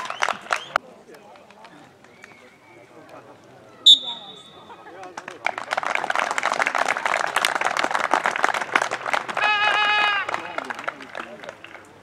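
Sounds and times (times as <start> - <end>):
crowd clapping: 0.0 - 0.8, 4.9 - 12.0.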